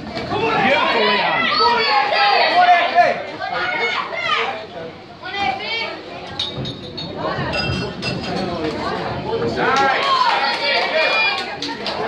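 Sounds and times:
crowd talking in a large hall: 0.0 - 12.0.

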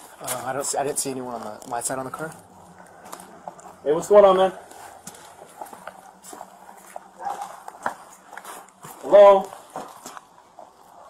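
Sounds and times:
faint low hum: 0.0 - 11.0
footsteps: 0.0 - 11.0.

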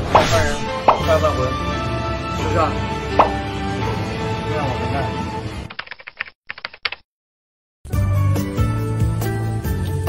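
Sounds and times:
background music: 0.0 - 5.7, 7.9 - 10.0
rapid sharp clicks: 5.7 - 7.0.

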